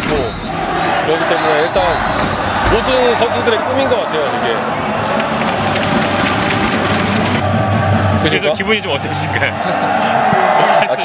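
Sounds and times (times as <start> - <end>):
rapid crackling noise: 0.0 - 7.4.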